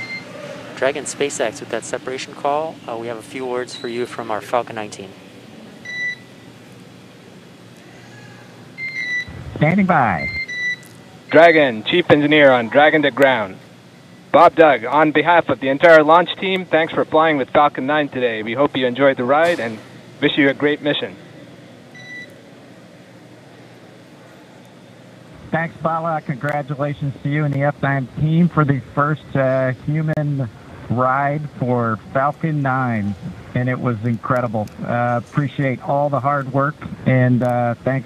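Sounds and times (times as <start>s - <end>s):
radio channel hiss: 0.8s - 5.2s, 9.3s - 10.4s, 11.3s - 13.6s, 14.3s - 21.2s
short electronic beep: 10.2s - 11.5s.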